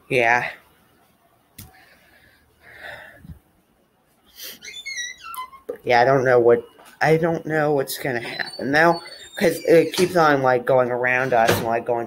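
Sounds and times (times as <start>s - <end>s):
person breathing into microphone: 1.7s - 3.4s.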